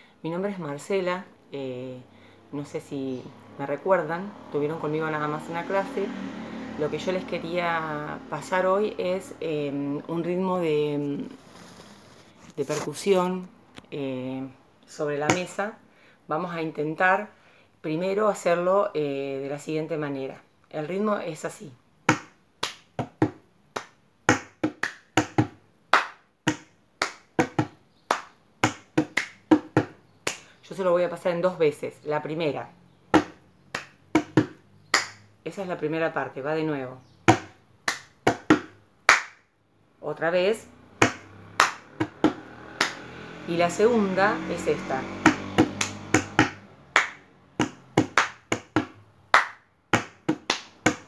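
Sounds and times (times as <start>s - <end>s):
hands slapping a tabletop: 22.1s - 30.5s, 33.1s - 35.2s, 37.3s - 39.4s, 41.0s - 43.1s, 45.2s - 51.0s
hands drumming on tabletop: 24.3s - 25.6s, 27.3s - 27.8s, 28.6s - 30.0s, 34.1s - 34.6s, 45.3s - 46.6s, 47.6s - 49.0s, 49.9s - 51.0s.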